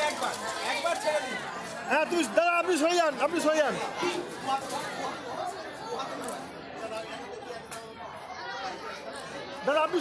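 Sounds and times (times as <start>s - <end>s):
chatter of people talking: 0.0s - 10.0s.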